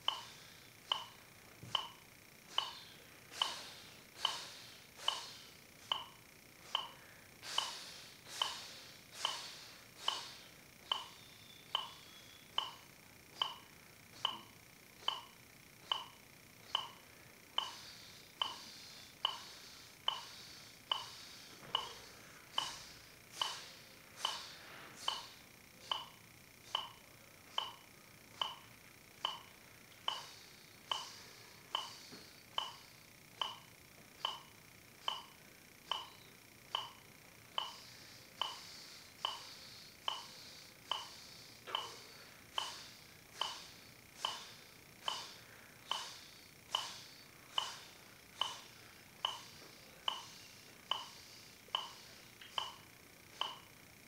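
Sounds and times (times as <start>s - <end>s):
electronic metronome beeps: 9.3s - 17.0s, 28.4s - 29.5s, 30.1s - 42.0s, 48.4s - 52.8s.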